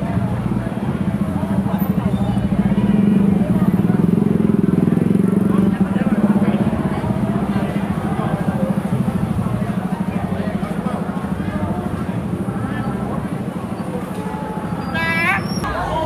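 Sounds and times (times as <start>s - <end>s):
voices: 0.0s - 16.0s.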